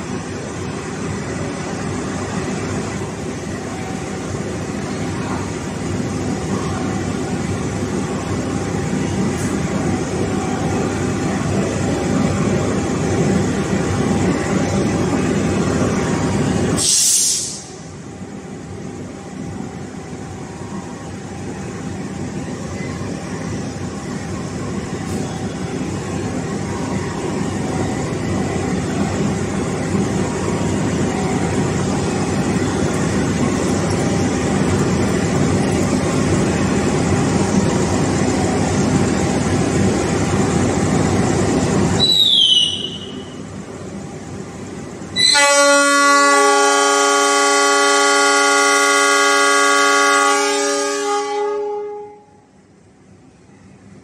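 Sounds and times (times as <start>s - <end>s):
diesel locomotive engine rumble: 0.0s - 54.0s
short high falling whistle: 42.0s - 43.4s
locomotive horn blast: 45.2s - 52.4s.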